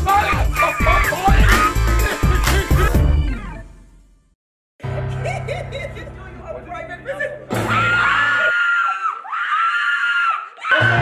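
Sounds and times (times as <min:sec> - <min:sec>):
person screaming: 0:00.0 - 0:01.8, 0:07.7 - 0:11.0
music with low bass: 0:00.0 - 0:03.7.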